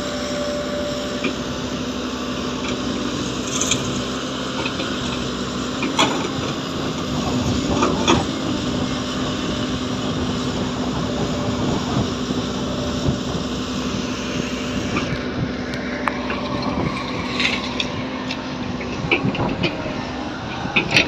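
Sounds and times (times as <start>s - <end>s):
excavator diesel engine running: 0.0s - 21.0s.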